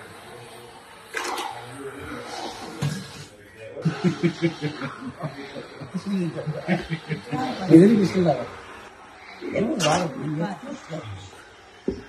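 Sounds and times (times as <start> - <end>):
rhythmic chuckling laughter: 3.7 - 11.0.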